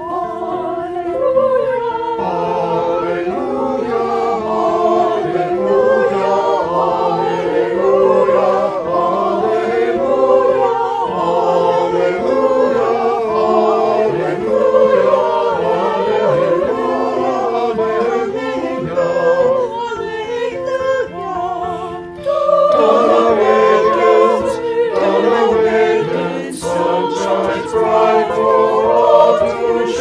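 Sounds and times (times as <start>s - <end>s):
choir singing in harmony: 0.0s - 30.0s.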